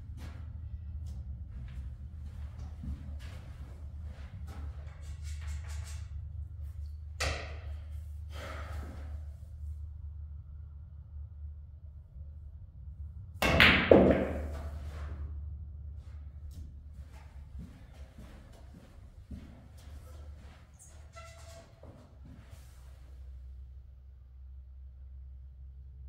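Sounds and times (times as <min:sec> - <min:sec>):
footsteps: 0:00.0 - 0:05.8, 0:16.0 - 0:23.0
balls knocking and clicking: 0:13.4 - 0:14.8
pool balls clacking: 0:13.4 - 0:15.0.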